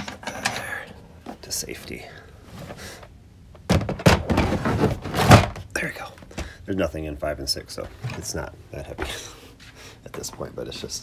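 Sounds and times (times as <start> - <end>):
plastic case knocking: 3.7 - 4.6.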